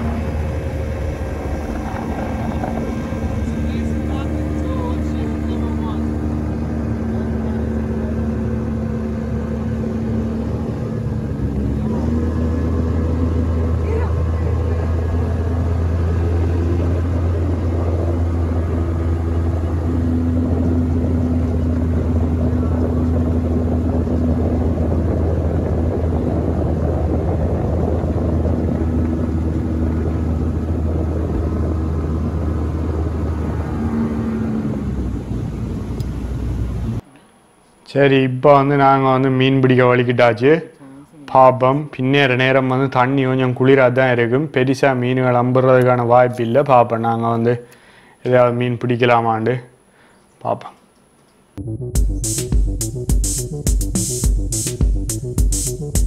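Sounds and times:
outboard motor droning: 0:00.0 - 0:37.6.

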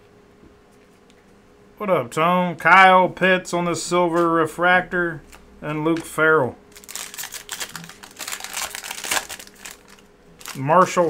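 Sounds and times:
cards rustling: 0:05.2 - 0:11.0
foil wrapper crinkling: 0:06.7 - 0:11.0.

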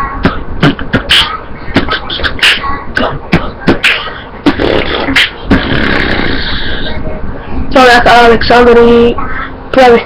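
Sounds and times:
beatboxing drum-like hits: 0:00.0 - 0:07.0
hissing buzz from mouth: 0:03.9 - 0:06.8.

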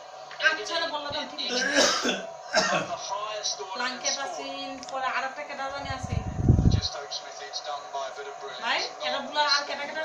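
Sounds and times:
people talking in a room: 0:00.0 - 0:10.0
television cricket commentary: 0:00.0 - 0:10.0.

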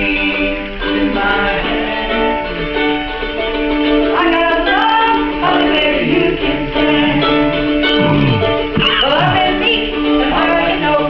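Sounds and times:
person singing: 0:07.9 - 0:09.6.

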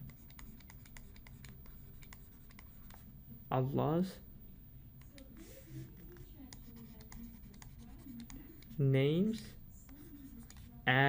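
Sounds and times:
stylus tapping on tablet: 0:00.0 - 0:03.0, 0:05.0 - 0:08.8, 0:09.8 - 0:10.8.

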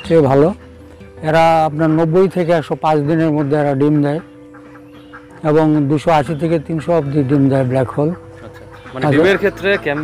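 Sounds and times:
faint poultry calls: 0:00.0 - 0:10.0.

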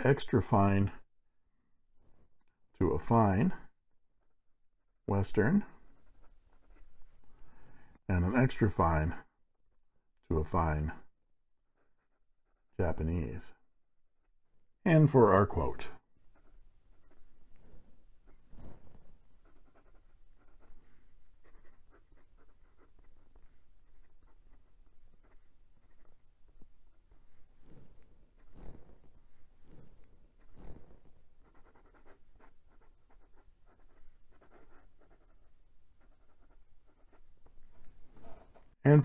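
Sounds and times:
pen nib scratching paper: 0:16.3 - 0:37.6.

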